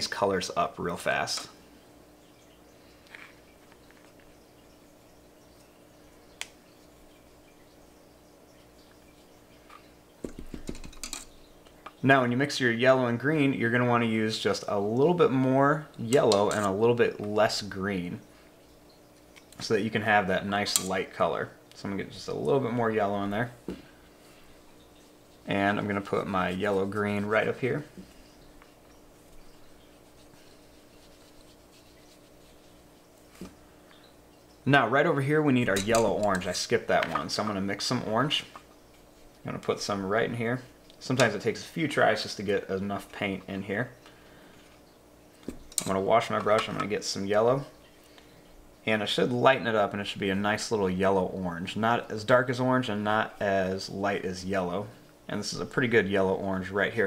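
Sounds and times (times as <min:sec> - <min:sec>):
faint steady hum: 0:00.0 - 0:57.0
paintbrush brushing on paper: 0:29.2 - 0:33.5.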